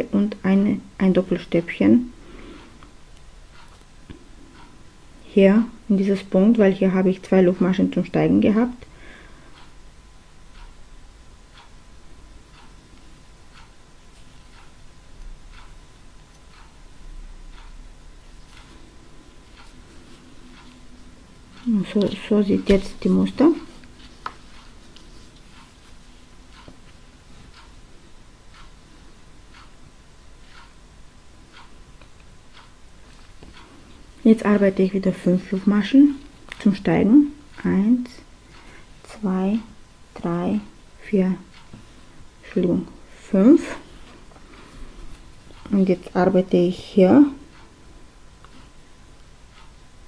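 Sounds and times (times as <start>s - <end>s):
clock ticking: 0.0s - 50.0s.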